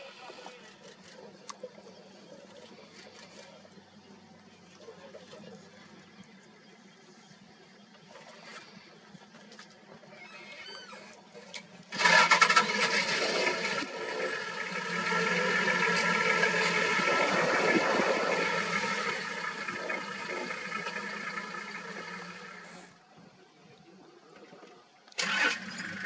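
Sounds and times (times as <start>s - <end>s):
engine running loudly: 11.9s - 23.0s.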